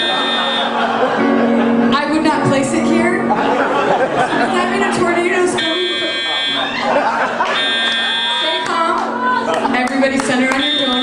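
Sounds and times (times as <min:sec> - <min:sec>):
pulsing alarm buzzer: 0:00.0 - 0:00.8, 0:05.6 - 0:06.7, 0:07.5 - 0:08.6, 0:10.6 - 0:11.0
people's voices: 0:00.0 - 0:11.0.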